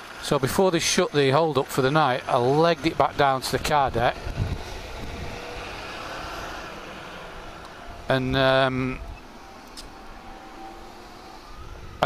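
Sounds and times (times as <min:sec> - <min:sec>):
motorcycle engine rumble: 0:00.0 - 0:12.0
wind hiss: 0:03.3 - 0:12.0.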